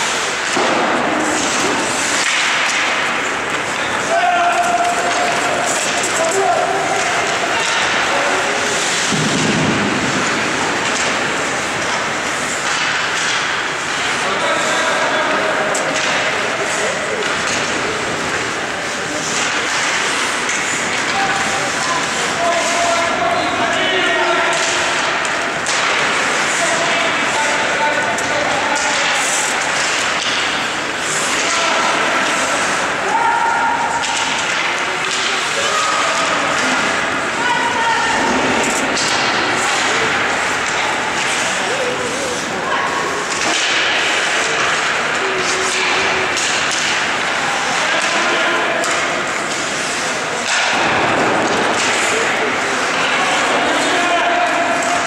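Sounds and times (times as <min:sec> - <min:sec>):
hockey sticks and puck knocking: 0:00.0 - 0:55.0
voices calling out and talking: 0:00.0 - 0:55.0.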